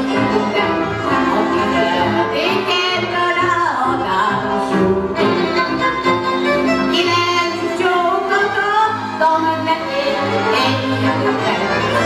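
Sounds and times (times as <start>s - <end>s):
woman singing: 0.0s - 5.4s, 6.9s - 12.0s
double bass: 0.0s - 12.0s
violins: 0.0s - 12.0s.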